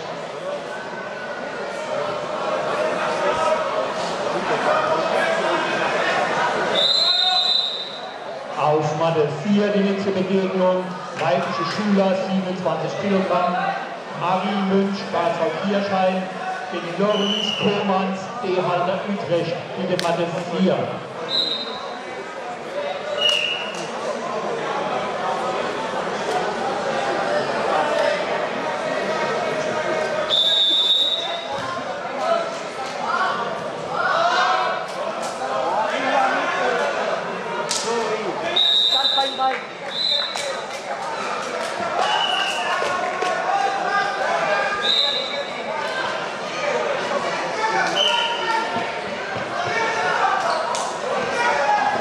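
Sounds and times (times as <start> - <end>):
crowd chatter: 0.0 - 52.0
referee's whistle blast: 6.8 - 8.1, 30.3 - 31.5, 38.5 - 40.4.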